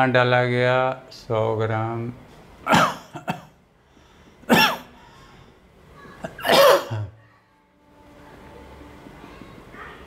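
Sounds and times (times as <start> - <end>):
man coughing: 2.7 - 3.6, 4.5 - 4.9, 6.3 - 7.2.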